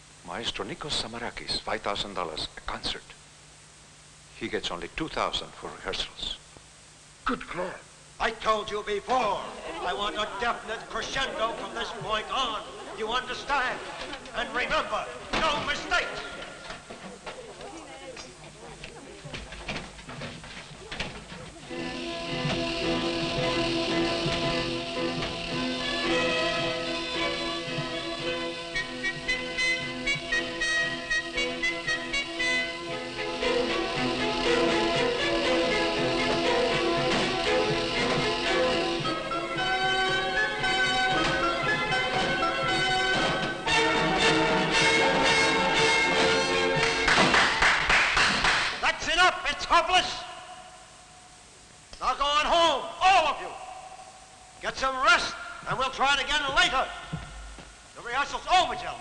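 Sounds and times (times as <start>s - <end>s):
orchestra playing sustained chords: 21.7s - 46.8s.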